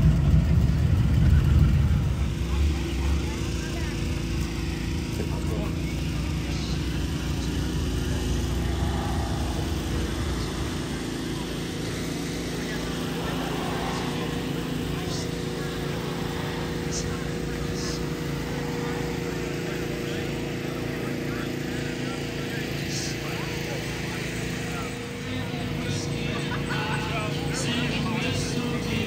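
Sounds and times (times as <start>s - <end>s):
indistinct voices: 0.0s - 29.0s
steady mechanical hum: 0.0s - 29.0s
low rumble: 6.0s - 19.6s.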